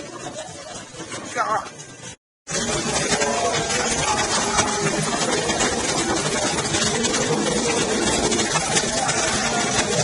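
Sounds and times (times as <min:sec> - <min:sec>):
fountain water jets rushing: 0:00.0 - 0:10.0.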